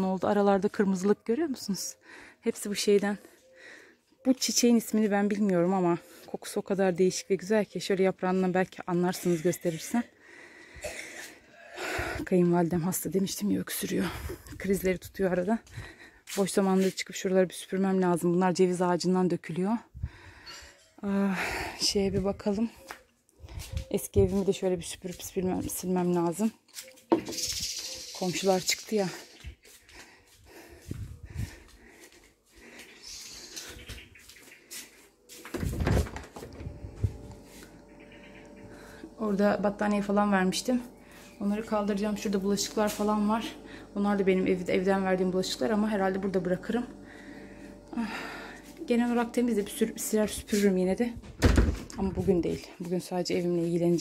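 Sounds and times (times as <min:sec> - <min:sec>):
footsteps: 0:29.1 - 0:37.9, 0:39.8 - 0:43.6, 0:48.0 - 0:54.0
door being handled: 0:51.3 - 0:51.9.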